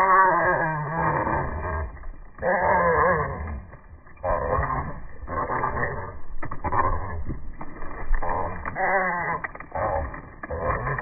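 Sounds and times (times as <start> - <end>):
squirrels growling: 0.0 - 11.0.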